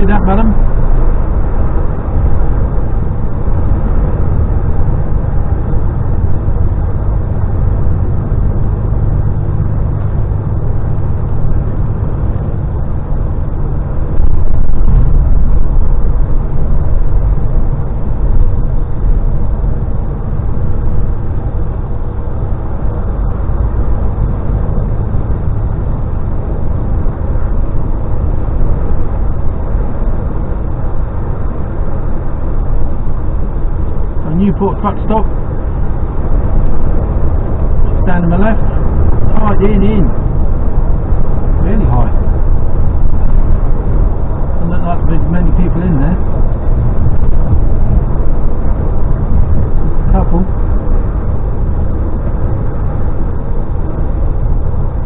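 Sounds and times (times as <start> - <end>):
lorry engine and tyre drone: 0.0 - 55.0.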